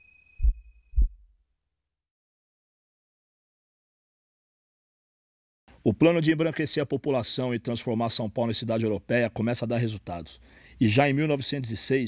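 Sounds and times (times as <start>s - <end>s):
deep heartbeat thumps: 0.4s - 1.3s.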